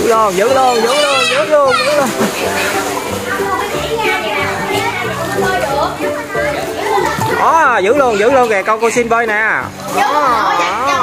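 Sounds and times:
background music: 0:00.0 - 0:11.0
children shouting: 0:00.5 - 0:02.2, 0:09.8 - 0:11.0.

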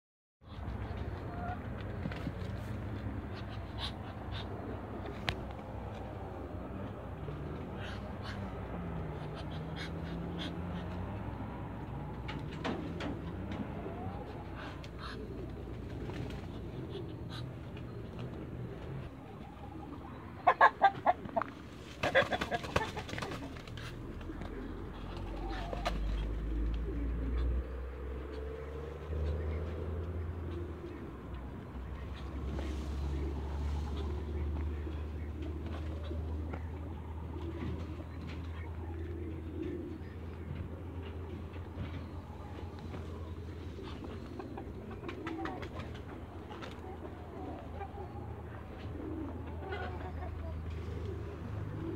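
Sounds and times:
ducks flapping and scuffling: 0:00.5 - 0:19.9, 0:20.5 - 0:27.6, 0:28.9 - 0:51.9.

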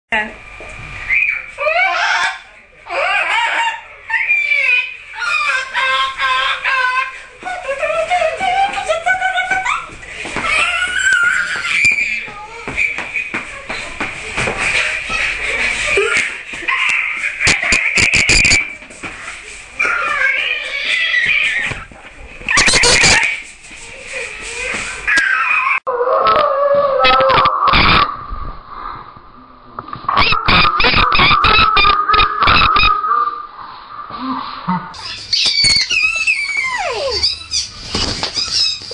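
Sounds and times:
high-pitched wavering cries: 0:35.0 - 0:38.9.

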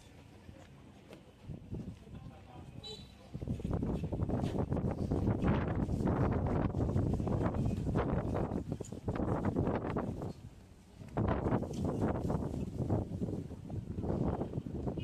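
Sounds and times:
wind buffeting microphone: 0:01.4 - 0:02.2, 0:03.3 - 0:15.0.

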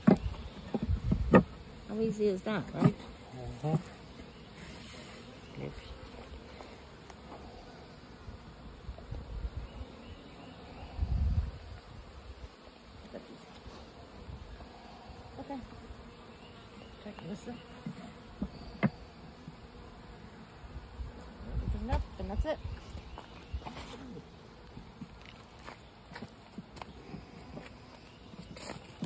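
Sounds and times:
honeybees buzzing: 0:00.0 - 0:29.0.

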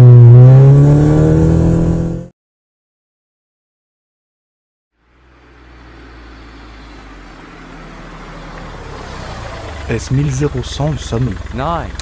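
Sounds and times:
truck engine humming: 0:05.0 - 0:12.0.

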